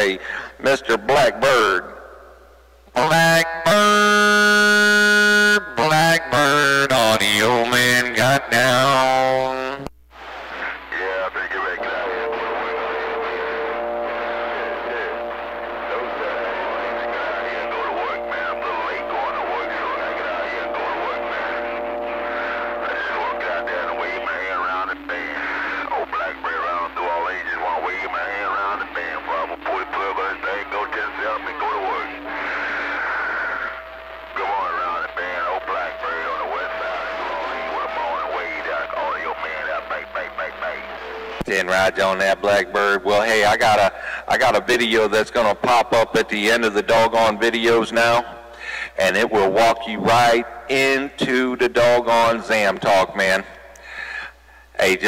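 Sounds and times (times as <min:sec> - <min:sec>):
garbled radio voices: 0:00.0 - 0:02.2, 0:02.9 - 0:55.0
steady radio tones: 0:00.0 - 0:55.0
radio static: 0:02.9 - 0:55.0.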